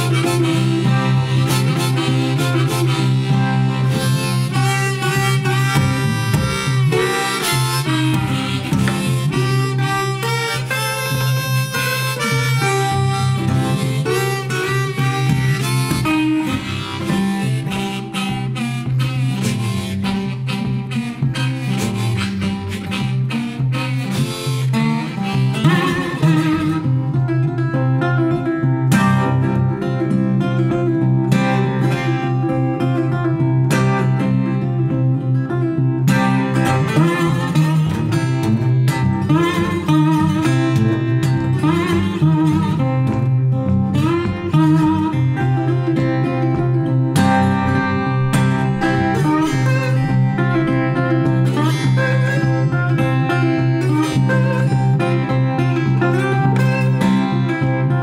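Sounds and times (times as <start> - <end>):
guitar bass rhythm: 0.0 - 58.0
harmonica wailing: 0.0 - 58.0.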